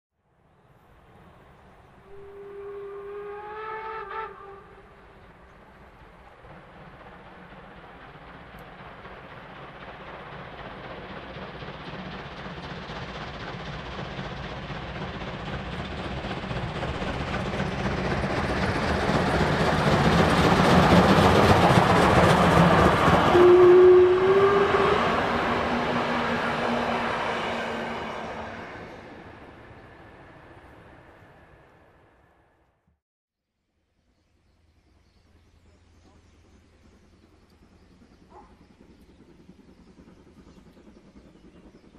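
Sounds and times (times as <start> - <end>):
steam train passing: 0.3 - 32.7, 34.6 - 41.9.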